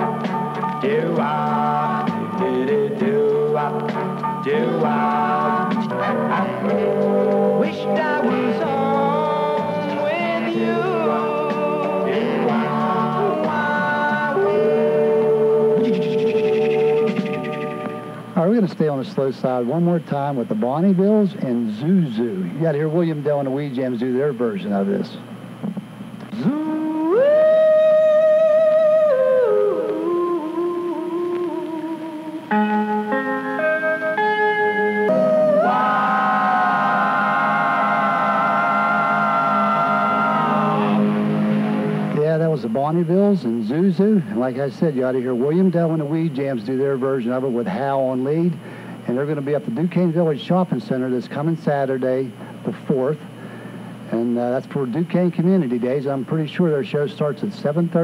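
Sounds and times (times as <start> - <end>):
vocal group singing over radio: 0.0 - 18.6, 35.0 - 50.2.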